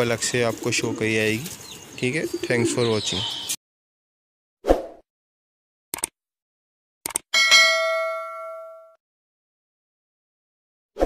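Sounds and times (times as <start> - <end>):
notification bell ding: 7.4 - 9.0.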